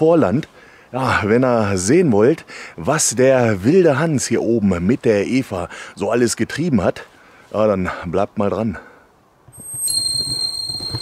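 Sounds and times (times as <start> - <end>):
high-pitched whine: 9.6 - 11.0.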